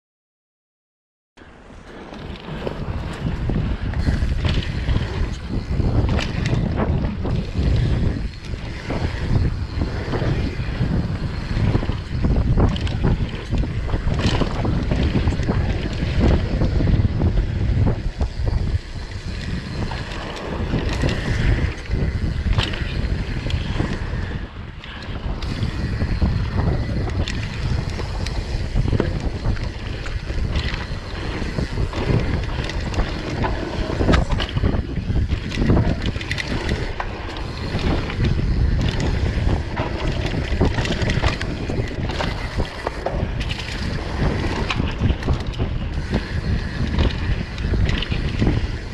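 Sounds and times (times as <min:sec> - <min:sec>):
wind rush on microphone: 0:01.4 - 0:48.9
bike rattles and knocks: 0:01.8 - 0:48.9
tyres rumbling over dirt: 0:02.1 - 0:48.9.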